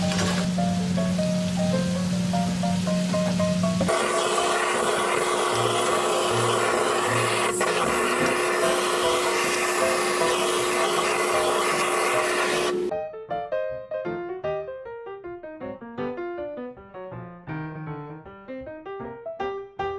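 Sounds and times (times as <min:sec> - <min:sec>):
blowtorch flame hissing: 0:03.8 - 0:12.9.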